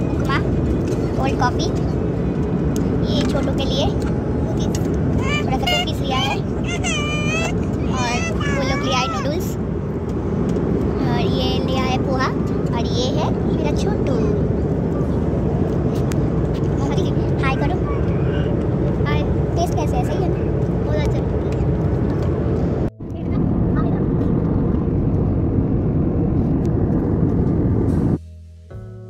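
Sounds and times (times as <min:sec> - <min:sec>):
indistinct passenger voices: 0:00.0 - 0:25.6
jet cabin roar: 0:00.0 - 0:29.0
acoustic guitar music: 0:05.2 - 0:09.3, 0:27.9 - 0:29.0.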